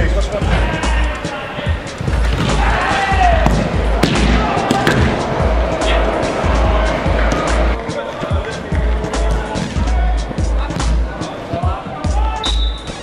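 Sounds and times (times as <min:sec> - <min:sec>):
heavy bass beat: 0:00.0 - 0:13.0.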